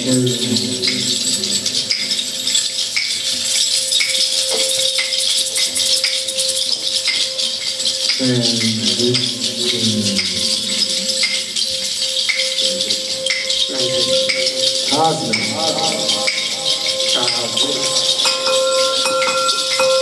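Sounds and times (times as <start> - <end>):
shaker shaken: 0.0 - 20.0
thin steady held tone: 0.0 - 20.0.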